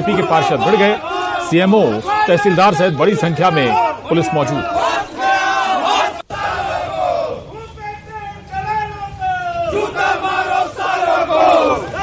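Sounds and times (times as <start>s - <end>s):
men shouting: 0.0s - 12.0s.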